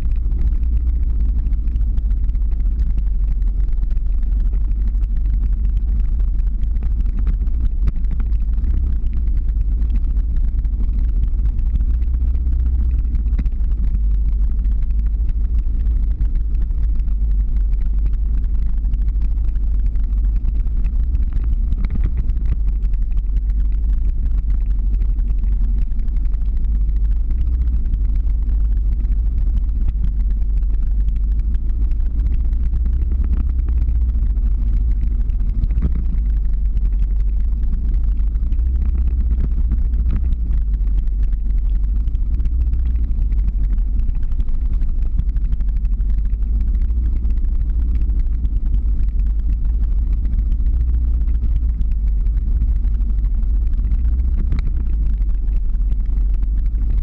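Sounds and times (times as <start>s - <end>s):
car driving slowly: 0.0s - 57.0s.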